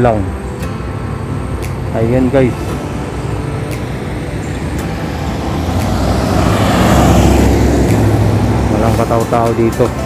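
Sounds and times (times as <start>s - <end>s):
road traffic rumble: 0.0s - 10.0s
vehicle passing close by: 2.5s - 10.0s.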